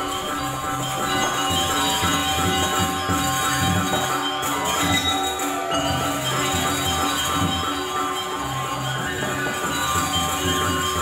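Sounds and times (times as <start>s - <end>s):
drums and gongs beat: 0.0s - 11.0s
metallophones ringing: 0.0s - 11.0s.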